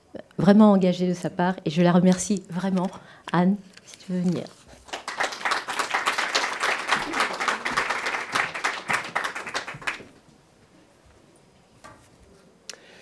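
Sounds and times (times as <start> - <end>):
audience applauding: 4.8 - 10.2.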